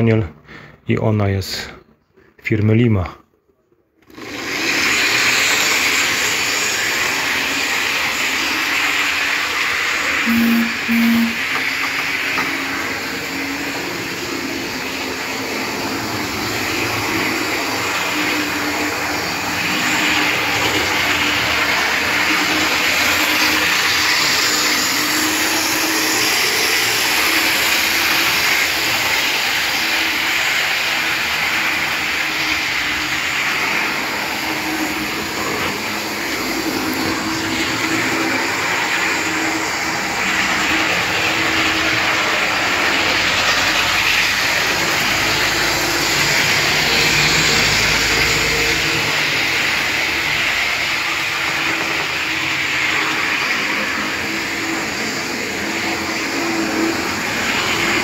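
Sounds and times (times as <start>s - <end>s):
model train whirring on track: 4.0s - 58.0s.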